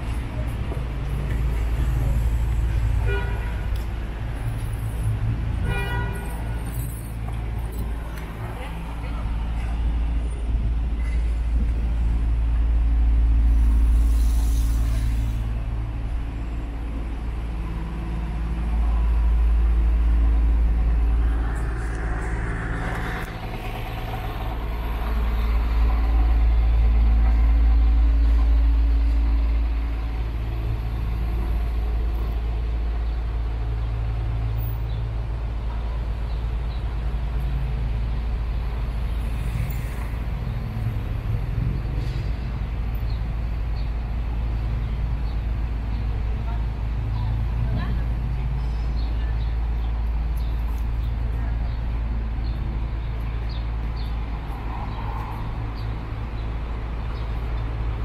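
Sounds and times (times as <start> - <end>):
vehicle engines passing and idling: 0.0 - 58.0
air brake hiss: 13.5 - 15.5.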